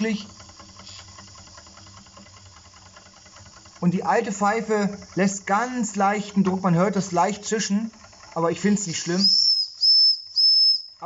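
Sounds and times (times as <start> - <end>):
model steam engine ticking: 0.0 - 11.0.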